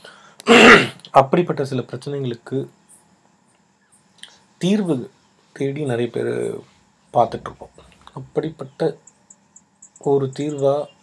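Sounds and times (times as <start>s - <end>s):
man clearing his throat: 0.4s - 1.0s
man speaking: 4.6s - 9.1s, 10.0s - 11.0s.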